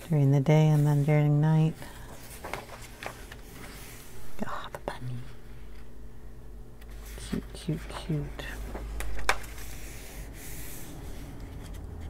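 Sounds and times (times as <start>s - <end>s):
hand rustling paper page: 0.0s - 4.1s, 6.9s - 11.8s.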